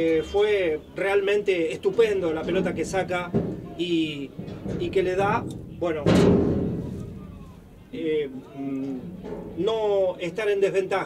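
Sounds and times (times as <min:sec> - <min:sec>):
heavy thump: 0:01.9 - 0:08.0.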